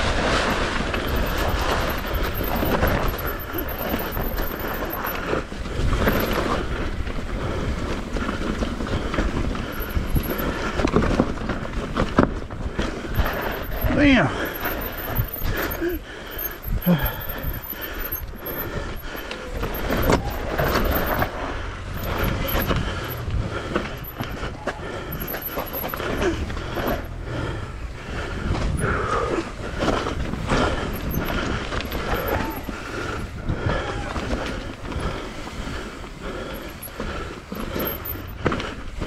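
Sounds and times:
bike rattling over roots: 0.0s - 39.0s
bike tyres rumbling on dirt: 0.0s - 39.0s.

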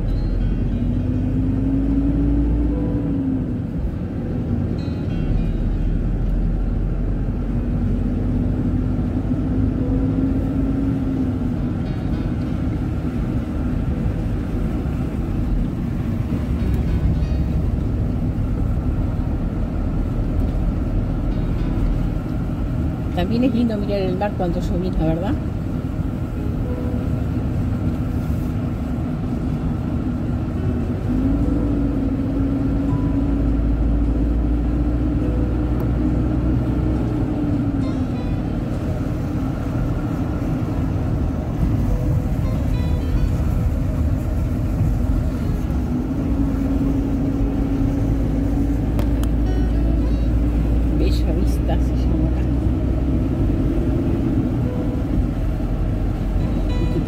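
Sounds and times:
car engine drone: 0.0s - 57.0s
tyre and road rumble: 0.0s - 57.0s.

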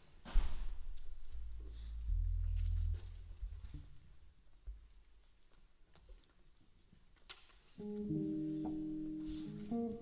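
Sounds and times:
jazz combo playing: 7.8s - 10.0s.

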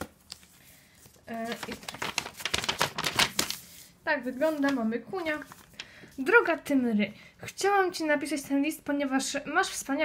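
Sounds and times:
paper rustling and crinkling: 0.0s - 6.2s.

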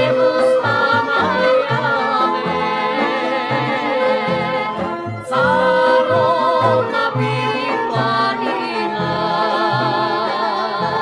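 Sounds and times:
instrumental accompaniment: 0.0s - 11.0s
person singing with vibrato: 0.0s - 11.0s.

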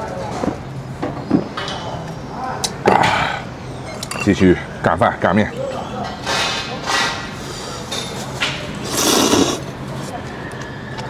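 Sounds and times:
person slurping noodles: 8.8s - 9.7s.

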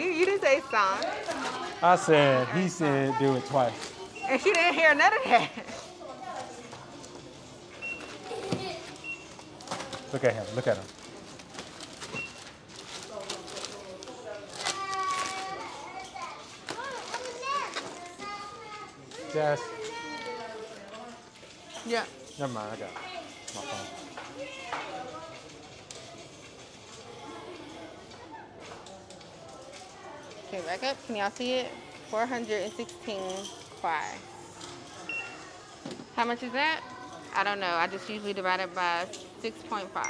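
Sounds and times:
faint store murmur: 0.0s - 40.0s.

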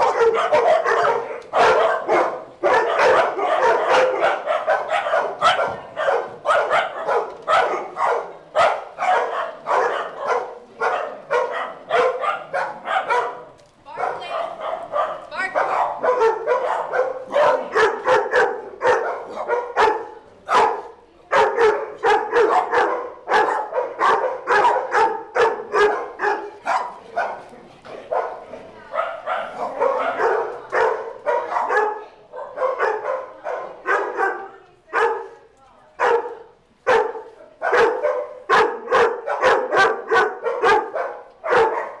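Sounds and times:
dogs barking and yipping: 0.0s - 27.4s, 29.0s - 35.3s, 36.0s - 42.0s.

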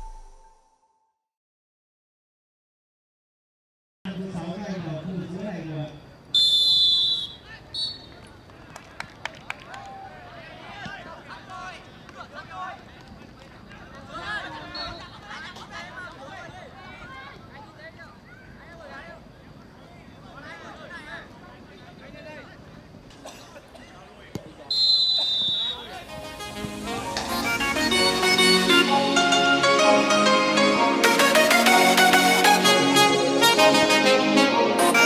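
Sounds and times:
referee's whistle blast: 6.3s - 8.1s, 24.7s - 26.0s.

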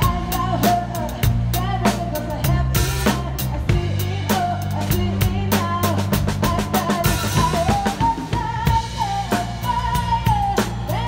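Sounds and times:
backing song: 0.0s - 11.0s
drum kit played with sticks: 0.0s - 11.0s.

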